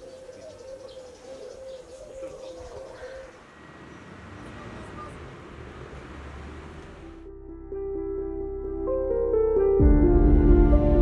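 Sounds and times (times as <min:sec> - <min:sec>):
small birds chirping: 0:00.0 - 0:05.3.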